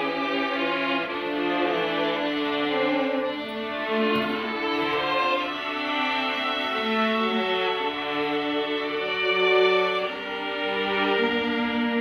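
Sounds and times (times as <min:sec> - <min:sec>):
string ensemble melody: 0:00.0 - 0:12.0.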